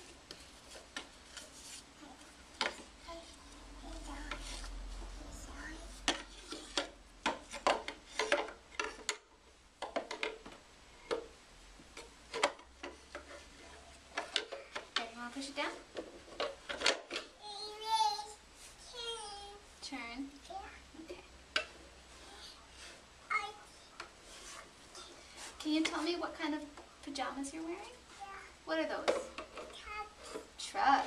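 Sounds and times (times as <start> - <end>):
soft rubbing: 0.0 - 6.8, 18.2 - 19.8, 21.7 - 26.4.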